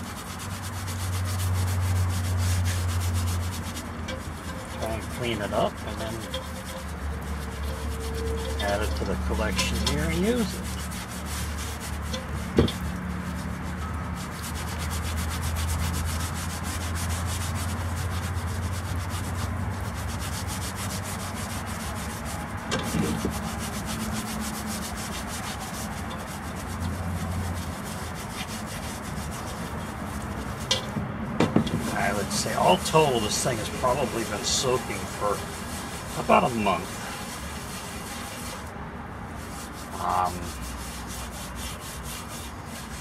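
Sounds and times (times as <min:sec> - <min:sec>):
scrubbing cast iron pot: 0:00.0 - 0:31.0, 0:31.6 - 0:43.0
knock: 0:31.4 - 0:31.8.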